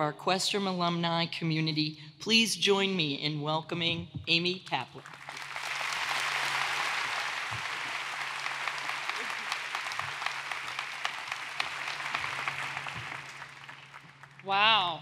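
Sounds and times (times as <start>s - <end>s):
audience applauding: 5.0s - 14.5s.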